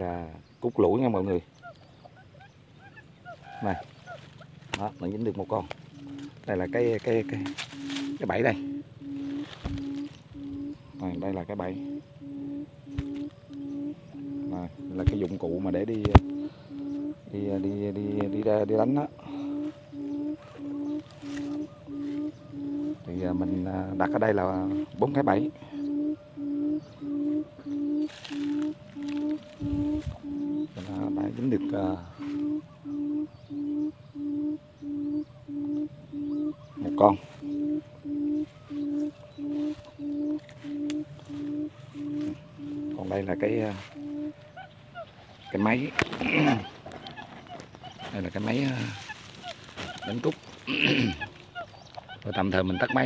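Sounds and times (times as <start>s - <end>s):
electronic bird call low hooting: 0.0s - 53.0s.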